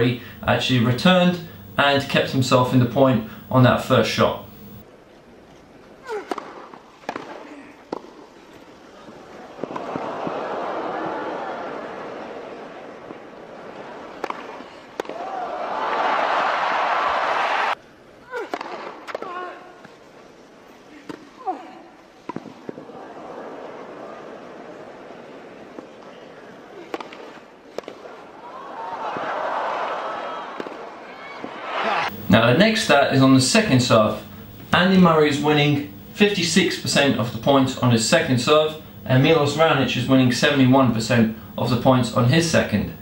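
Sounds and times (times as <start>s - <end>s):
faint crowd hum: 0.0s - 43.0s
tennis ball hit by rackets: 6.1s - 10.4s, 14.1s - 15.5s, 18.4s - 20.0s, 21.0s - 21.3s, 22.2s - 22.9s, 26.8s - 28.2s, 30.5s - 32.2s.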